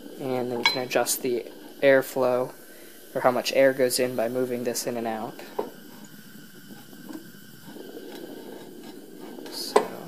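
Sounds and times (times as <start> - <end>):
gas burner flame rushing: 0.0 - 10.0.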